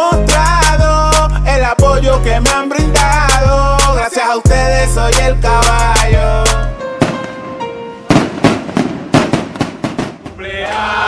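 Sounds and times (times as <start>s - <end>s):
fireworks bangs and crackles: 7.0s - 10.4s
group of voices singing: 10.4s - 11.0s.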